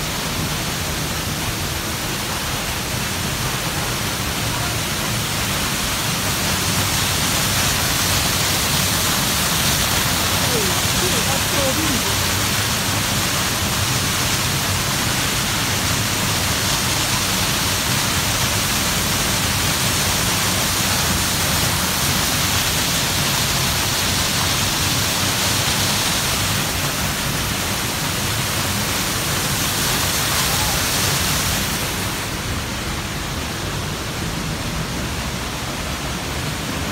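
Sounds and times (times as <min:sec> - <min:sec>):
waterfall rushing: 0:00.0 - 0:36.9.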